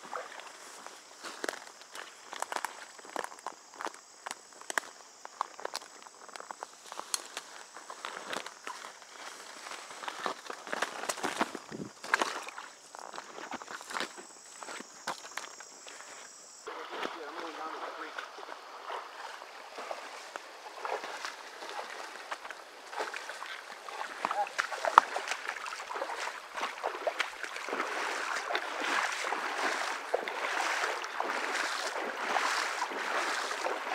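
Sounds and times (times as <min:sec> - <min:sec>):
creek water flowing: 0:00.0 - 0:33.9
footsteps on gravel: 0:00.5 - 0:16.3, 0:19.9 - 0:33.9
small crackles: 0:01.2 - 0:16.2.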